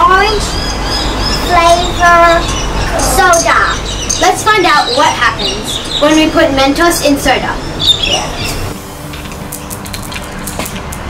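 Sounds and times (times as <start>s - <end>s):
candies clicking on plastic bottle: 9.1s - 11.0s.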